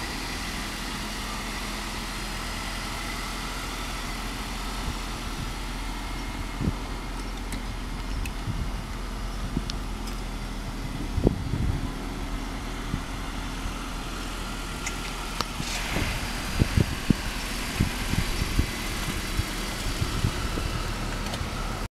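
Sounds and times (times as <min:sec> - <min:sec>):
car engine idling: 0:00.0 - 0:21.9.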